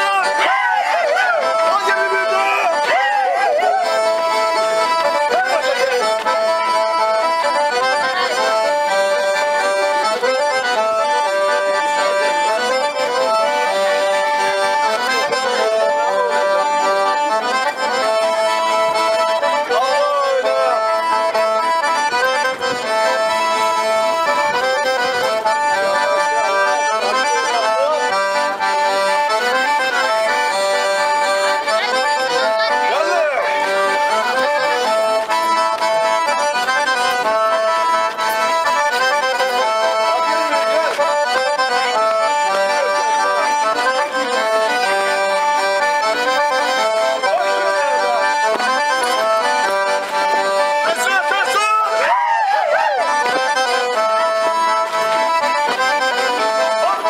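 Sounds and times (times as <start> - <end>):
accordion music: 0.0 - 57.0.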